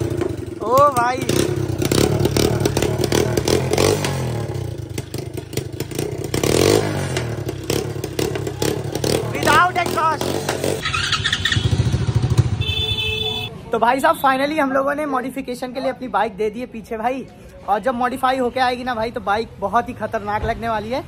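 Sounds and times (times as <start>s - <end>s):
dirt bike engine revving: 0.0s - 13.2s.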